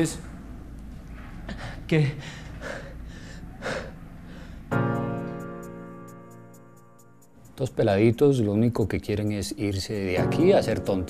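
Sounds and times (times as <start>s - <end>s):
person breathing: 1.5s - 4.8s.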